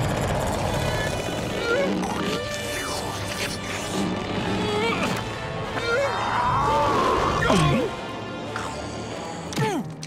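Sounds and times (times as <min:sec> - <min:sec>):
cartoon monster growling: 0:00.3 - 0:09.6.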